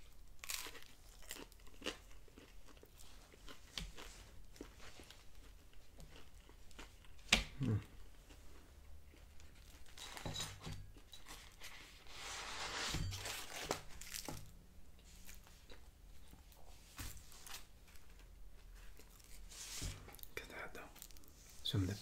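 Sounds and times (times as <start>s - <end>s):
plastic wrapping crinkling: 12.4s - 14.5s.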